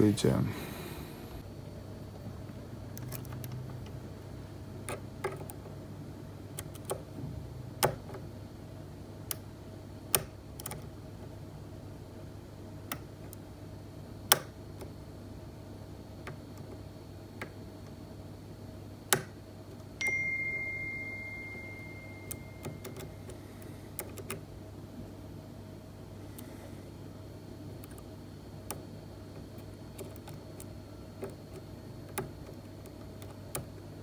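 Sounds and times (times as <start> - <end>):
lock pick clicking in pins: 2.9 - 4.0, 4.8 - 5.7, 6.5 - 7.0, 10.1 - 10.9, 22.3 - 23.4, 29.4 - 33.8
short ringing tone: 20.0 - 23.2.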